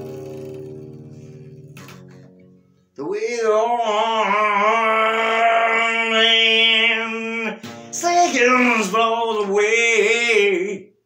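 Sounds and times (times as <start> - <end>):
acoustic guitar chord strummed: 0.0 - 10.9.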